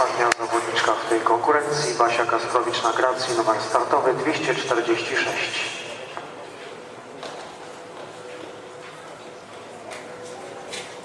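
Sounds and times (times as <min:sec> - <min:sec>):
murmur of voices: 0:00.0 - 0:11.0.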